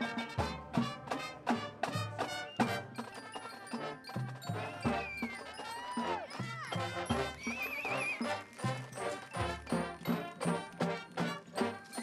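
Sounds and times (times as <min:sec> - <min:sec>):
marching band horns: 0:00.0 - 0:12.0.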